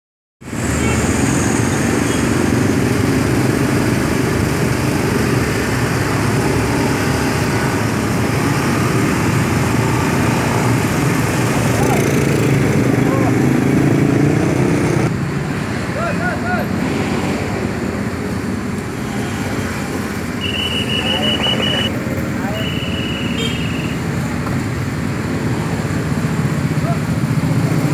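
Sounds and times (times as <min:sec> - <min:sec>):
street traffic noise: 0:00.4 - 0:27.9
motor scooters passing: 0:00.6 - 0:27.9.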